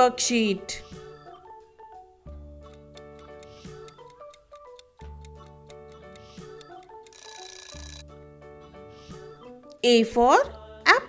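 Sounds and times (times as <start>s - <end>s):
light background music: 0.0s - 11.0s
timer ringing: 7.1s - 8.0s.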